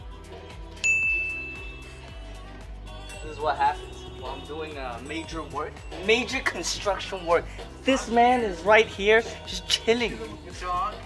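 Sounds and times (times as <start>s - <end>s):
background music with steady beat: 0.0s - 11.0s
bright ding sound effect: 0.8s - 2.0s.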